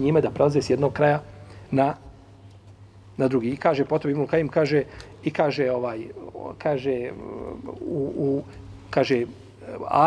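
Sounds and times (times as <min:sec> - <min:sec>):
man speaking: 0:00.0 - 0:02.2, 0:03.2 - 0:10.0
man hesitating and murmuring: 0:06.2 - 0:08.7.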